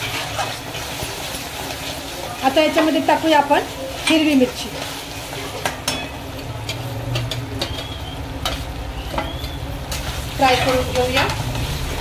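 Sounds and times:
onion and tomato sizzling: 0:00.0 - 0:12.0
spatula scraping in a pan: 0:00.0 - 0:12.0
spatula clicking against pan: 0:06.6 - 0:10.0.

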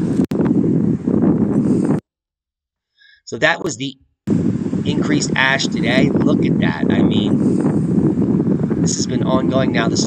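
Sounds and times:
wind buffeting microphone: 0:00.0 - 0:02.0, 0:03.4 - 0:10.0.

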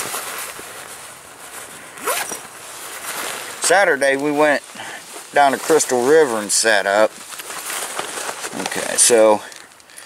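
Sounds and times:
low background hiss: 0:00.1 - 0:10.0
zipper being pulled open: 0:02.0 - 0:02.5.

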